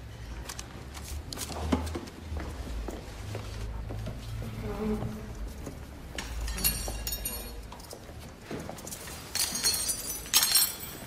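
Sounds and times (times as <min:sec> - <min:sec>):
metal spoons clinking: 0:06.4 - 0:07.8, 0:09.3 - 0:11.0.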